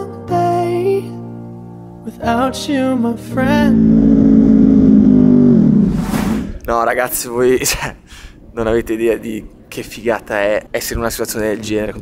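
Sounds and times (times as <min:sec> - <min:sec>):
motorcycle engine at high revs: 0:03.6 - 0:05.9.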